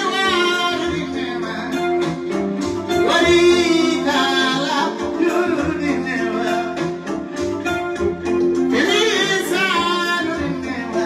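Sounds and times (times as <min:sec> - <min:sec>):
man singing: 0:00.0 - 0:07.3, 0:08.6 - 0:11.0.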